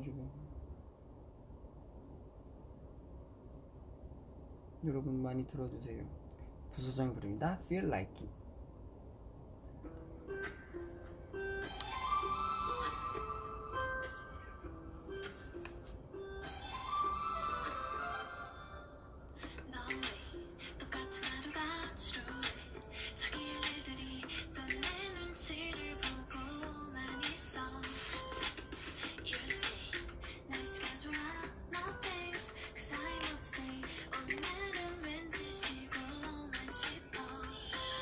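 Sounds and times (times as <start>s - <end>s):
woman singing pop melody: 11.7s - 14.3s, 16.4s - 38.0s
steady beat: 27.2s - 38.0s.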